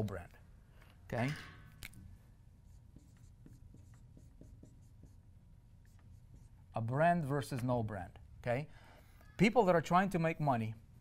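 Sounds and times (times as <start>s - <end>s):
marker writing on whiteboard: 1.7s - 7.7s.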